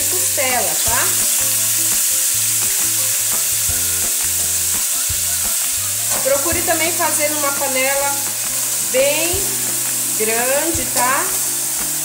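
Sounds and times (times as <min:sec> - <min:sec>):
meat sizzling in hot oil: 0:00.0 - 0:12.0.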